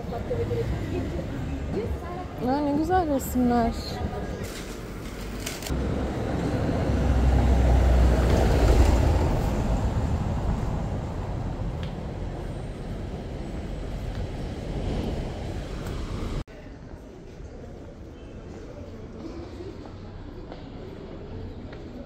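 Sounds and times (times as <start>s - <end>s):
traffic noise: 0.0s - 22.0s
vehicle passing with low rumble: 5.7s - 16.4s.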